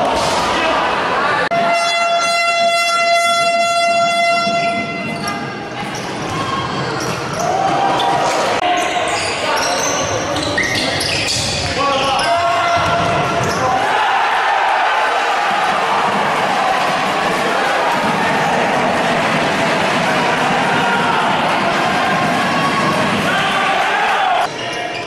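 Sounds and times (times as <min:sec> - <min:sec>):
crowd noise in sports hall: 0:00.0 - 0:25.0
horn blowing: 0:01.5 - 0:05.1
people shouting: 0:12.2 - 0:24.5.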